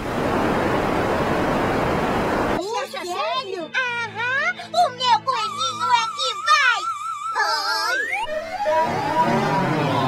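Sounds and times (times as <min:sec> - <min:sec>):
cartoon girl sing-song voice: 0:02.6 - 0:08.3.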